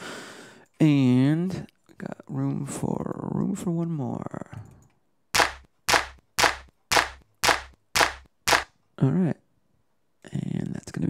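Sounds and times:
snare drum hits with low thump: 0:05.4 - 0:08.7.

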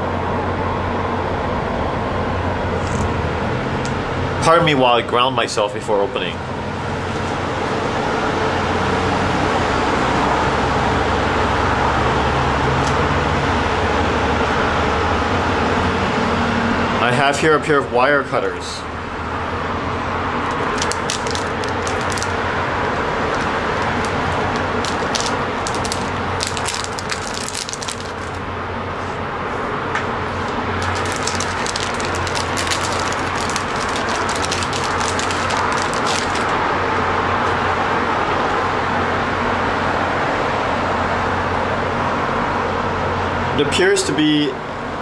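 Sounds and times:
rail-yard noise: 0:00.0 - 0:43.5
city traffic: 0:00.0 - 0:45.0
plastic bag crinkling and clicking: 0:20.4 - 0:28.4, 0:30.4 - 0:36.6.

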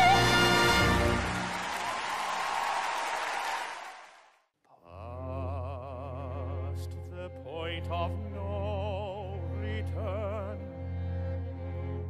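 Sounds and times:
audience applause in a hall: 0:00.0 - 0:04.4.

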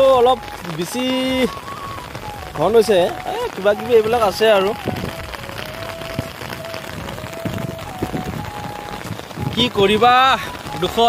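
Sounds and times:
steady rain hiss: 0:00.0 - 0:11.0.

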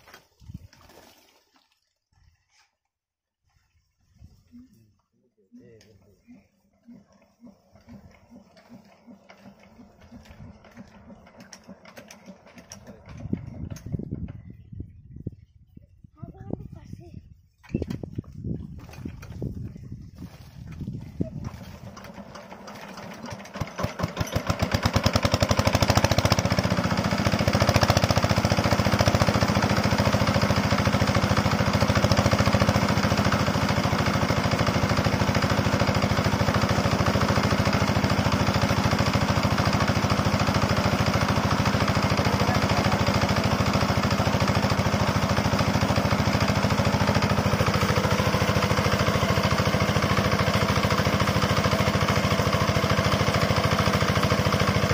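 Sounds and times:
water splashing from pipe: 0:00.0 - 0:02.7
diesel engine running: 0:06.1 - 0:14.2, 0:20.8 - 0:54.9.

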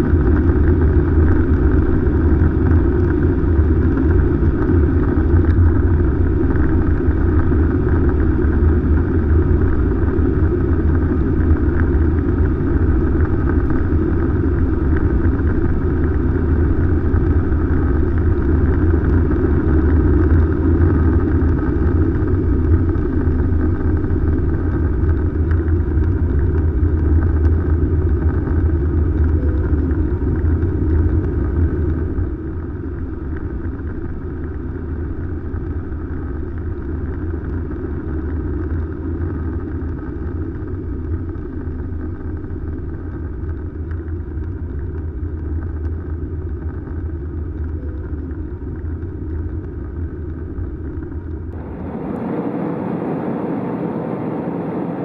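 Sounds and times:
jet engines droning: 0:00.0 - 0:55.0
rushing air: 0:51.5 - 0:55.0.

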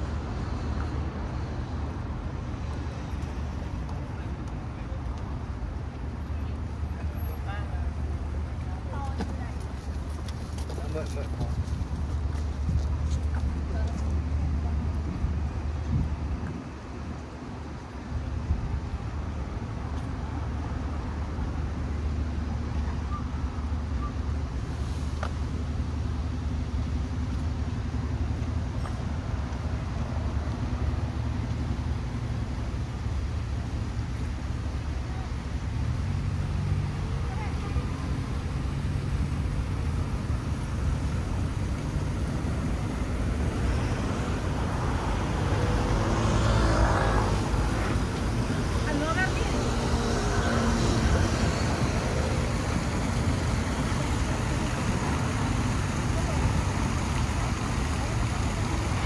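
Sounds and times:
traffic rumble: 0:00.0 - 0:59.0
people talking: 0:06.2 - 0:09.8, 0:13.6 - 0:15.1, 0:37.0 - 0:38.4, 0:48.7 - 0:51.2, 0:52.0 - 0:59.0.

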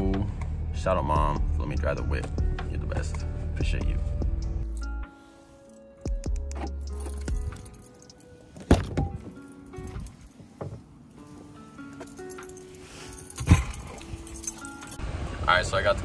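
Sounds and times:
background music with held notes: 0:00.0 - 0:15.4
keys jangling: 0:05.6 - 0:15.0
car door shutting with thud: 0:13.4 - 0:14.0.

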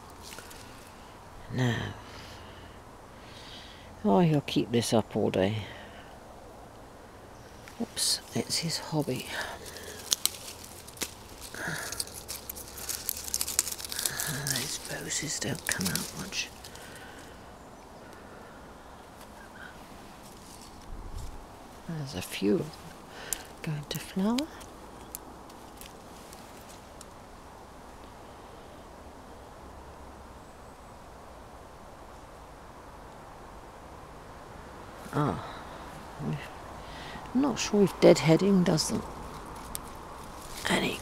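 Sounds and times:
leaves brushing microphone: 0:07.5 - 0:17.5, 0:19.0 - 0:27.3, 0:37.4 - 0:41.0.

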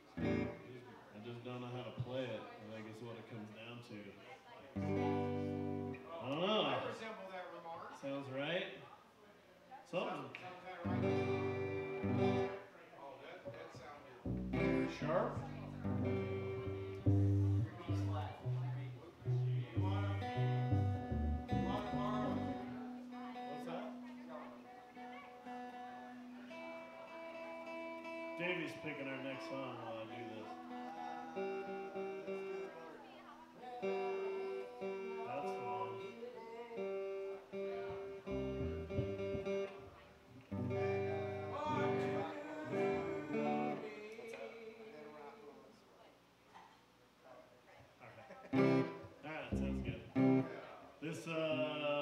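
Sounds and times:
upright bass: 0:00.0 - 0:00.6, 0:04.8 - 0:06.0, 0:10.9 - 0:12.5, 0:14.3 - 0:22.8, 0:37.9 - 0:39.8, 0:40.4 - 0:43.8, 0:48.6 - 0:50.5
acoustic guitar: 0:04.8 - 0:06.1, 0:10.9 - 0:12.7, 0:14.3 - 0:45.0, 0:48.5 - 0:50.6.

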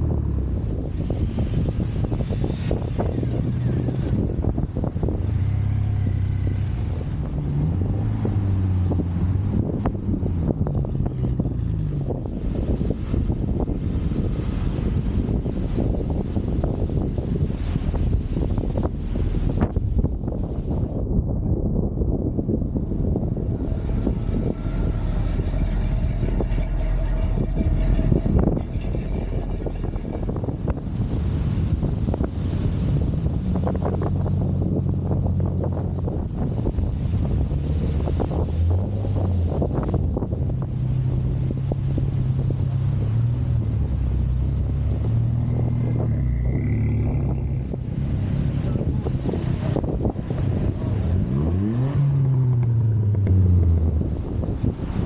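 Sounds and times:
car engines driving off: 0:00.0 - 0:55.0
wind on microphone: 0:00.0 - 0:55.0.

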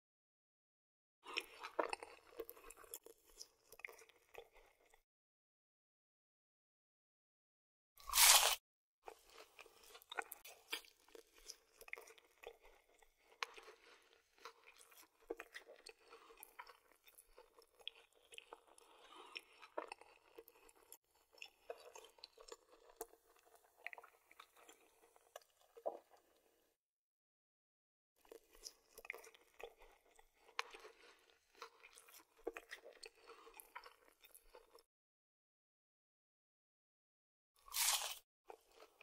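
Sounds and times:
chewing with small crunches: 0:01.2 - 0:05.0, 0:08.0 - 0:26.8, 0:28.2 - 0:34.9, 0:37.6 - 0:39.0
crunchy bite: 0:08.0 - 0:08.6, 0:37.6 - 0:38.2.

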